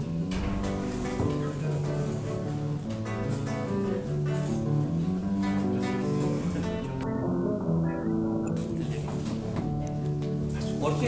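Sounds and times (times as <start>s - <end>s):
acoustic guitar strummed and picked: 0.0s - 11.0s.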